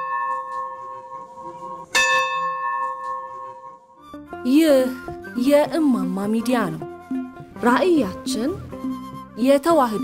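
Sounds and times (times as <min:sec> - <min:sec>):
bell ringing: 0:00.0 - 0:01.2, 0:02.0 - 0:03.8.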